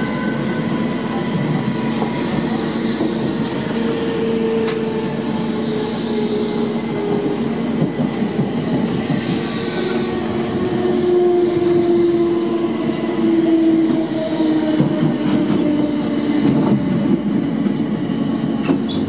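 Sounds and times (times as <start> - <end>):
train wheels rumbling on track: 0.0 - 19.0.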